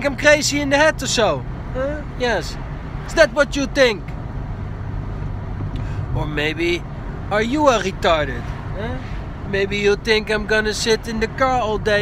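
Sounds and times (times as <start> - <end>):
car cabin road and engine noise: 0.0 - 12.0.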